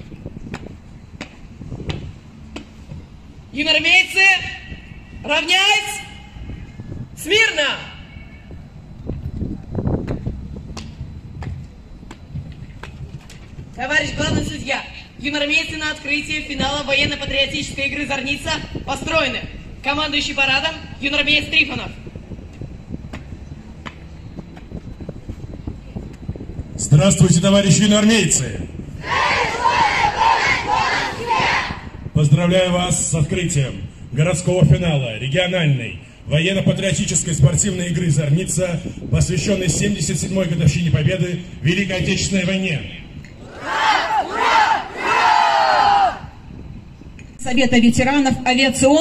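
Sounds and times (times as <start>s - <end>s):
low rumble of street noise: 0.0s - 49.0s
wind: 0.0s - 49.0s
cadets shouting in unison: 29.0s - 31.9s, 43.4s - 46.3s.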